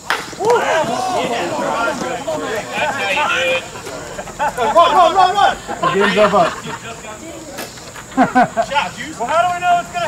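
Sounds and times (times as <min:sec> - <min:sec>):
insects chorus: 0:00.0 - 0:10.0.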